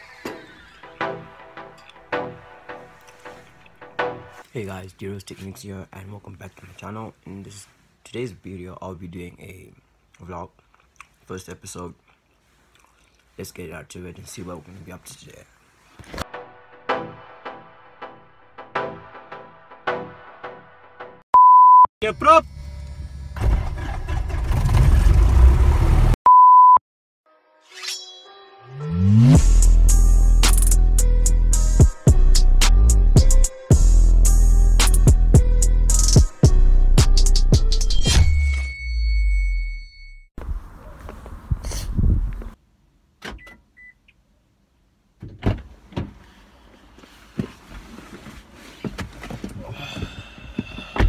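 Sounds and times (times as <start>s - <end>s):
high beep: 21.4s - 21.9s, 26.3s - 26.8s
rustling of person climbing into seat: 45.2s - 51.0s.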